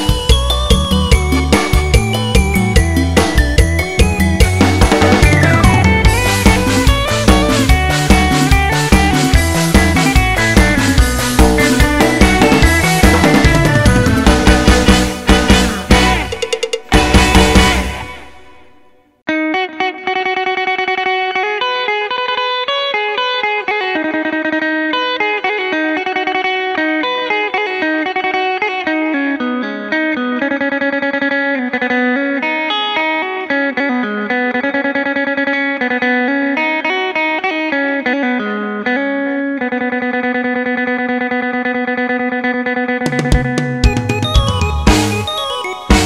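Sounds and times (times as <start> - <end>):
amplified plucked string melody: 0.0 - 46.0.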